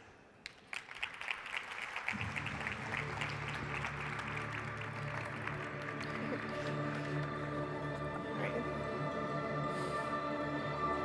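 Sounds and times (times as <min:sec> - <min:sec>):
audience applause: 0:00.5 - 0:07.8
music: 0:01.0 - 0:11.0.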